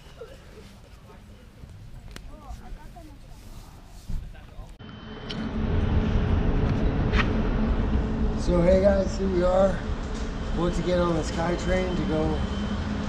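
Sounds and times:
low rumble of street noise: 0.0s - 13.0s.

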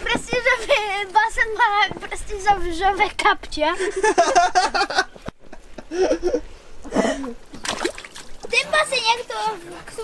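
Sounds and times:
voices talking: 8.4s - 10.0s.

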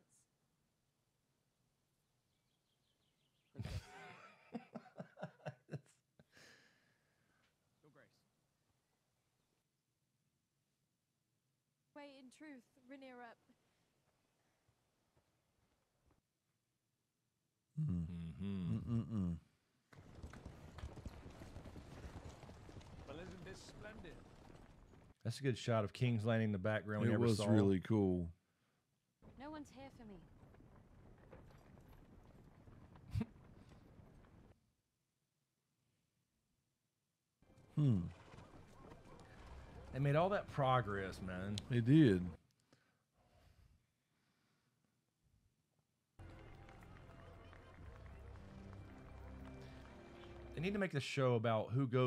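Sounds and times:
horse hooves clip-clopping: 19.9s - 25.2s, 30.2s - 34.6s, 37.5s - 41.7s.

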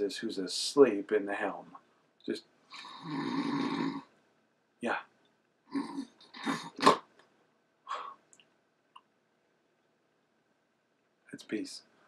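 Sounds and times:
man speaking: 0.0s - 2.4s, 4.8s - 5.1s, 7.9s - 8.2s, 11.3s - 11.9s
man imitating snoring: 2.7s - 4.1s, 5.7s - 6.8s.

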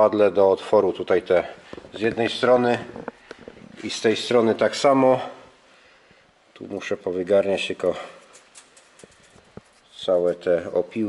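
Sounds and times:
faint clicks of steel turnings: 8.0s - 9.9s.

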